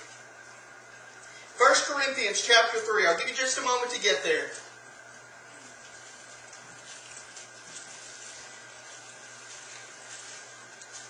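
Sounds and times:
steady low hum: 0.0 - 11.0
bible pages rustling: 5.6 - 11.0.

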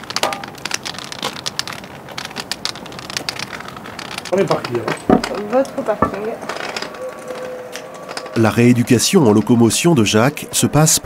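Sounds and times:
cane tapping on asphalt: 0.0 - 6.5
footsteps: 1.2 - 10.7.

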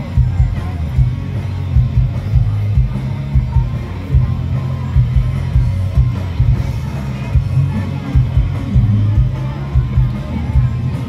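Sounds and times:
heavy bass pulsing: 0.0 - 11.0
live band music with guitar: 0.0 - 11.0.

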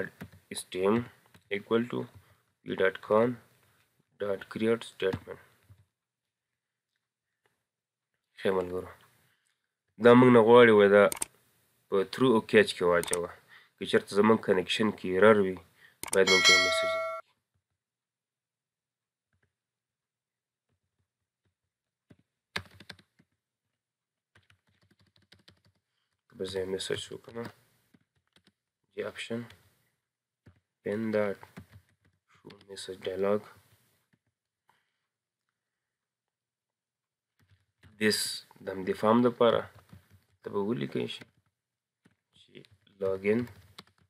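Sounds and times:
person speaking: 4.2 - 5.5, 11.9 - 17.2, 40.4 - 41.2
computer keyboard keystrokes: 11.1 - 11.3, 13.0 - 13.2, 16.0 - 16.3, 22.6 - 23.3, 24.4 - 25.8, 31.4 - 32.7, 43.4 - 44.0
keyboard key clicks: 13.0 - 13.2.

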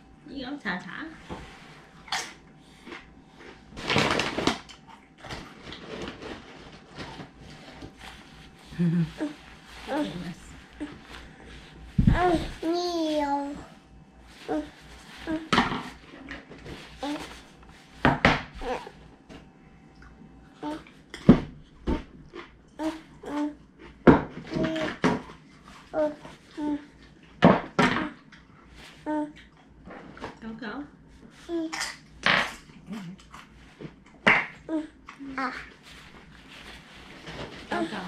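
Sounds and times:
toddler babbling: 12.1 - 13.6, 17.0 - 17.3, 18.6 - 18.9, 20.6 - 20.9, 22.8 - 23.6, 24.5 - 24.9, 25.9 - 26.8, 34.7 - 35.7.

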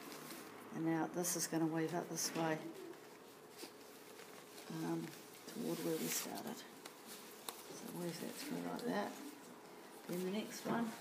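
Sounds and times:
faint steady hum: 0.0 - 11.0
rustling of leaf strips woven: 0.0 - 11.0.

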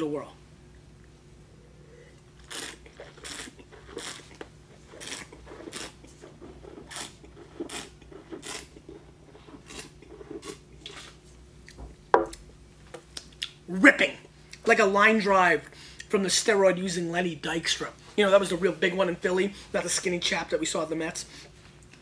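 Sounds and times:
slurping air through wine: 1.9 - 11.2.

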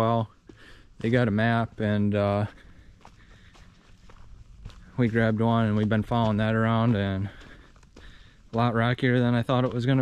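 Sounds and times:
footsteps on rocky dirt trail: 0.0 - 10.0.

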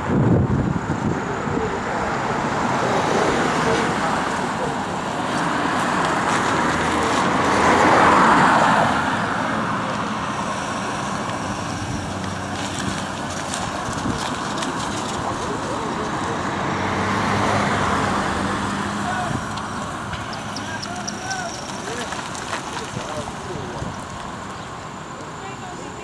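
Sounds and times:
cars passing on a busy street: 0.0 - 26.0.

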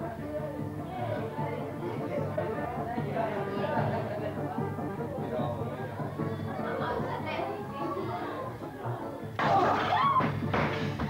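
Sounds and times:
overlapping voices chattering: 0.0 - 10.4
music: 0.0 - 11.0.

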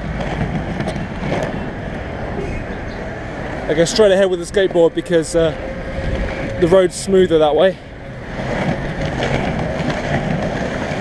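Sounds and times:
skateboard wheels rolling on asphalt: 0.0 - 11.0.

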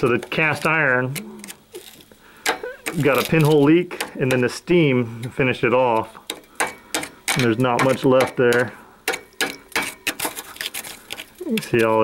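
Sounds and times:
screwdriver scraping rust off metal: 1.4 - 4.5, 6.0 - 12.0.

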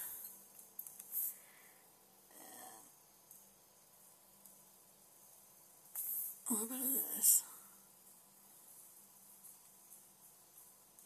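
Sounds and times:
faint steady hum: 0.0 - 11.0
short breathy hiss: 1.1 - 1.9
soft breath: 1.1 - 2.8.

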